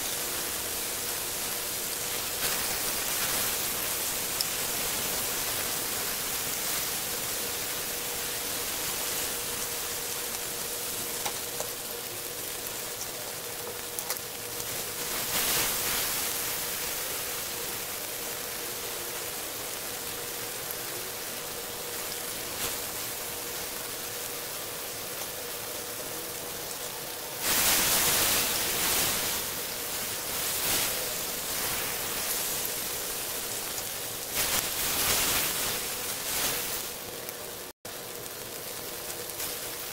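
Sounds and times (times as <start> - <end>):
faint steady hum: 0.0 - 39.9
meat and garlic sizzling on grill pan: 0.0 - 39.9.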